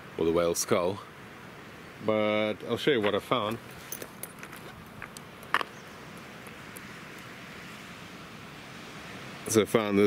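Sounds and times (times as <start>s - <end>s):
faint steady hiss: 0.0s - 10.0s
pebbles clacking together: 3.0s - 5.7s.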